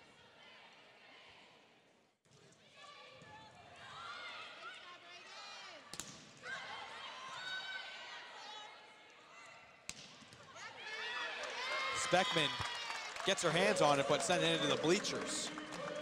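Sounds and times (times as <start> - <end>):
crowd and player voices: 10.4 - 16.0.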